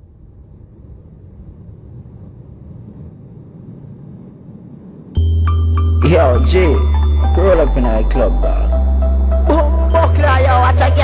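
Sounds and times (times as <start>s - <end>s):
low steady rumbling: 0.0s - 11.0s.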